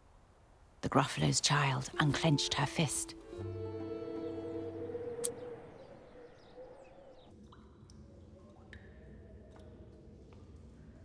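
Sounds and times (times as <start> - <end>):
film score music: 1.4 - 7.2.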